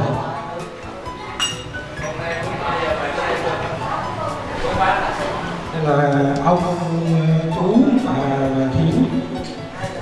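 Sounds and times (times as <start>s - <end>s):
porcelain teaware clink: 1.4s - 2.4s.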